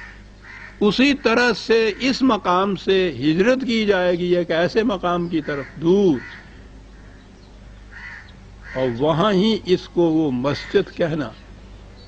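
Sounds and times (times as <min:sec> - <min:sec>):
faint hum and hiss: 0:00.0 - 0:12.0
faint bird call: 0:05.2 - 0:09.2.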